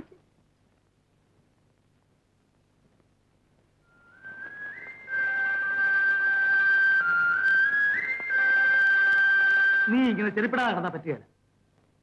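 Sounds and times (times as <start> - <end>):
film music with whistle-like lead: 3.9 - 10.1.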